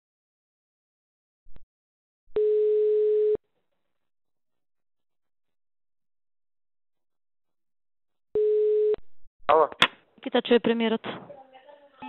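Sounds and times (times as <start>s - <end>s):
telephone ringback tone: 2.4s - 3.4s, 8.4s - 9.0s.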